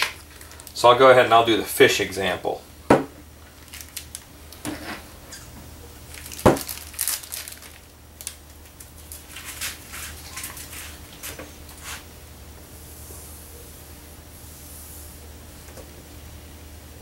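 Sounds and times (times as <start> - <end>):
paintbrush scraping: 9.4 - 12.1.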